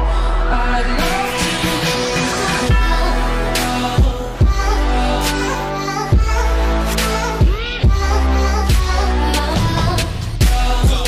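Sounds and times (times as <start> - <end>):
electronic remix music: 0.0 - 11.0.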